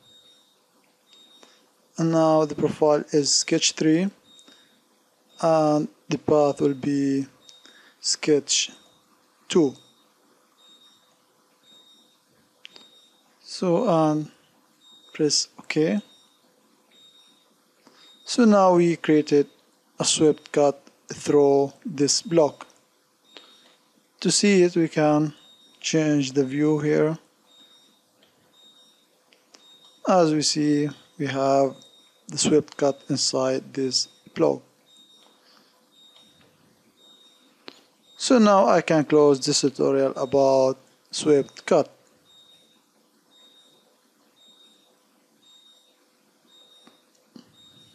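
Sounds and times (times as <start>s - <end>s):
high-pitched electronic tone: 5.3s - 47.9s.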